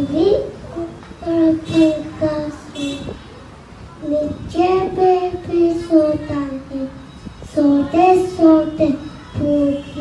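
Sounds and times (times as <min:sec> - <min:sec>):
boy singing into a microphone: 0:04.0 - 0:10.0.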